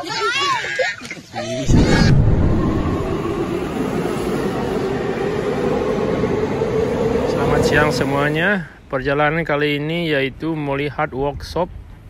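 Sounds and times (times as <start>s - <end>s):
subway train rumble: 1.4s - 9.6s.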